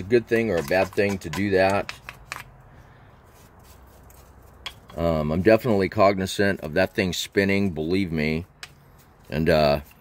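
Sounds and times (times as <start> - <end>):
brush sweeping over metal: 3.1 - 6.0, 6.7 - 10.0.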